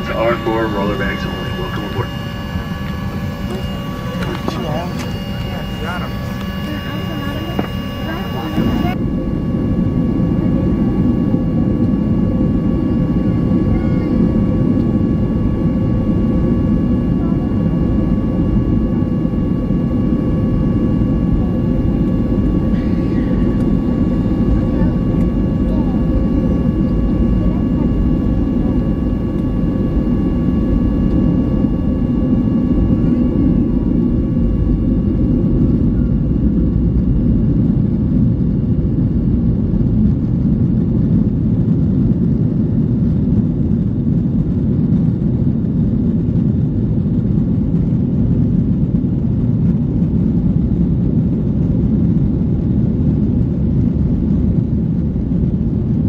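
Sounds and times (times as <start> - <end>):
high engine whine: 0.0 - 56.0
jet engines low rumble: 0.0 - 56.0.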